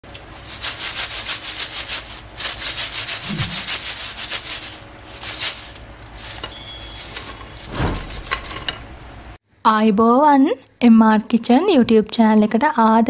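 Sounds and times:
fries shaken in mesh strainer: 0:00.0 - 0:08.3.

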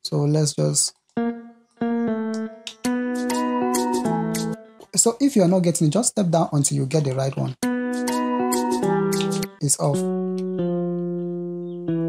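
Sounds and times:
plucked electric guitar notes: 0:01.2 - 0:05.0, 0:07.6 - 0:12.0.

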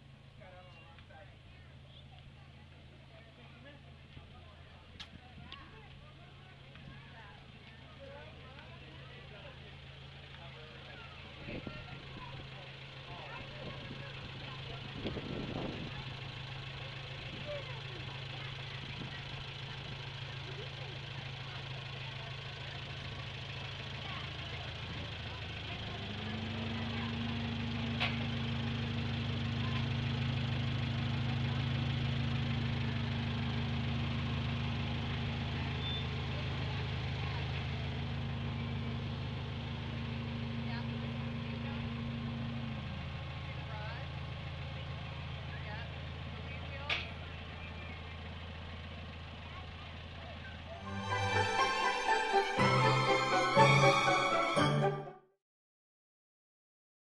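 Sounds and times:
locomotive engine humming: 0:00.0 - 0:34.1, 0:47.3 - 0:55.2.

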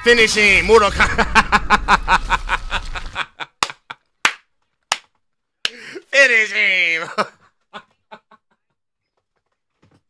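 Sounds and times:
man laughing: 0:00.9 - 0:04.1, 0:06.9 - 0:08.7.

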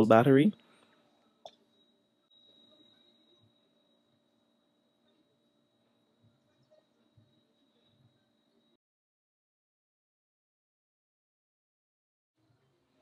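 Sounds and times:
faint steady high tone: 0:00.0 - 0:08.8.

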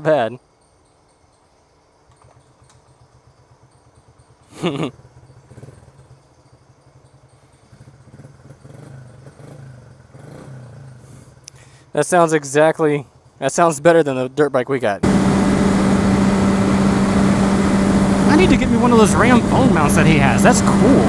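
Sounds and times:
pit bike engine idling: 0:02.1 - 0:11.9, 0:15.0 - 0:21.0.

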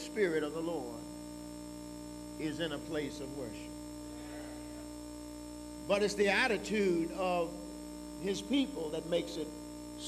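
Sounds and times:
man speaking: 0:00.0 - 0:01.1, 0:02.4 - 0:03.7, 0:05.8 - 0:09.5
electrical mains hum: 0:00.0 - 0:10.0.

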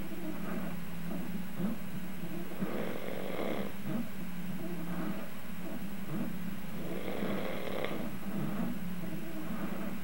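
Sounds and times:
low hum: 0:00.0 - 0:03.0, 0:03.6 - 0:10.0
man snoring: 0:02.6 - 0:03.7, 0:06.8 - 0:08.1.

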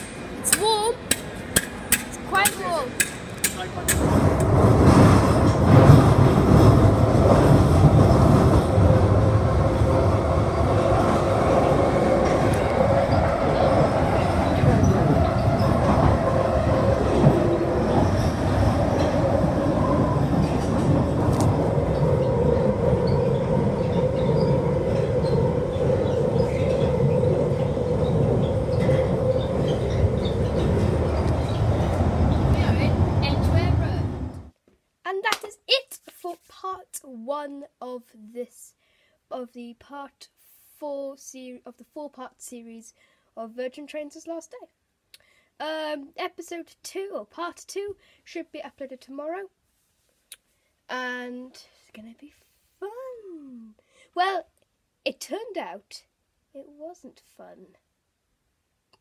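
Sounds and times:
train wheels rumbling on rail: 0:00.0 - 0:34.5.

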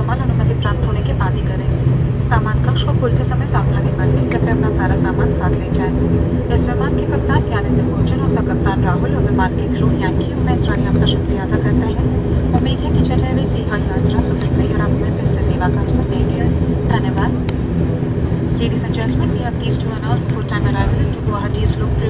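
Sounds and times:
propeller and engine drone: 0:00.0 - 0:22.0
public-address announcement: 0:00.0 - 0:22.0.

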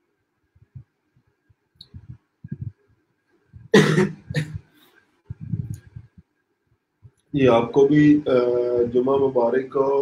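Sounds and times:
man coughing: 0:03.7 - 0:04.6.

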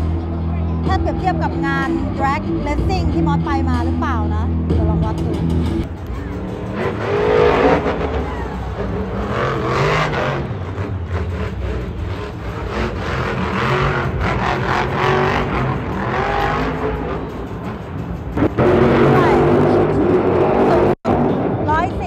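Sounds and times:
monster truck engines revving: 0:00.0 - 0:22.0.

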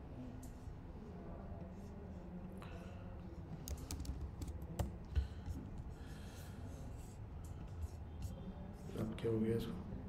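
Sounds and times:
computer keyboard key clicks: 0:03.6 - 0:04.9.

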